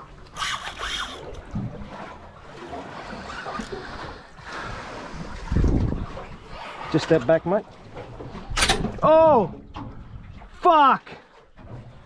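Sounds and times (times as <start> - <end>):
water washing against boat hull: 0.0 - 12.0
wind on microphone: 3.9 - 6.7.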